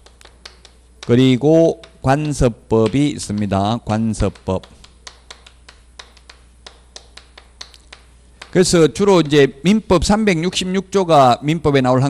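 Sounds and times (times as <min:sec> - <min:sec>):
chalk tapping on chalkboard: 0:00.0 - 0:09.6.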